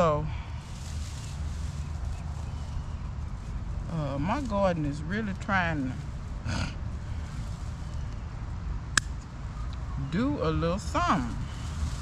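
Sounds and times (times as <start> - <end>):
low outdoor rumble: 0.0 - 12.0.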